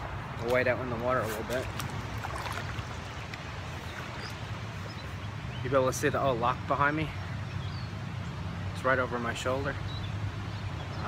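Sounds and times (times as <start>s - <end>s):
river water rushing: 1.6s - 5.6s.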